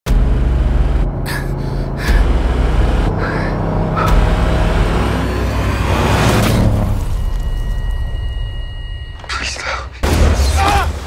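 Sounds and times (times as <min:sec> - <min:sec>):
van engine rumble: 0:00.1 - 0:07.4.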